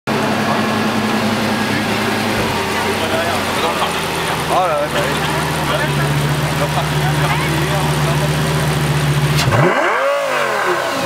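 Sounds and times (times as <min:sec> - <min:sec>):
faint voices: 0:00.1 - 0:09.2
car engine idling: 0:00.1 - 0:11.0.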